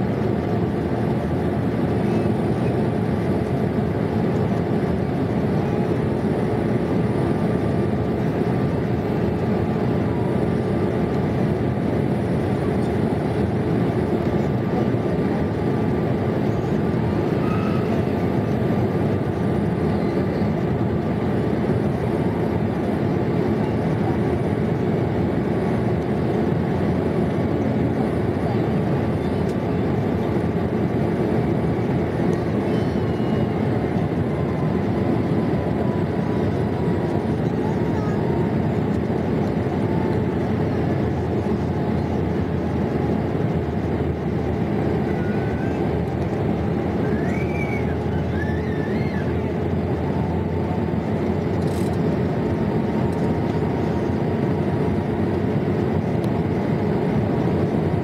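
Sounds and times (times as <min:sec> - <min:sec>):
airplane cabin noise: 0:00.0 - 0:58.0.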